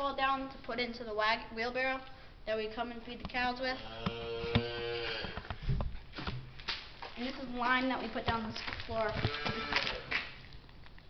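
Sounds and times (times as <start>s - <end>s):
cow mooing: 3.8s - 5.4s, 9.2s - 10.1s.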